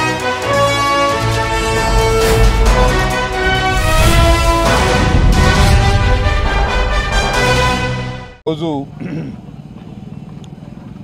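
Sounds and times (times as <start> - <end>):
engine running steadily: 8.7 - 11.0.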